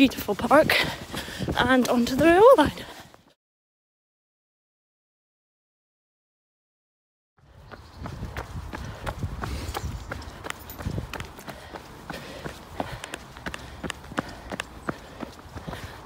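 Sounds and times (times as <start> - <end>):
running footsteps on pavement: 0.0 - 3.4, 7.4 - 16.0.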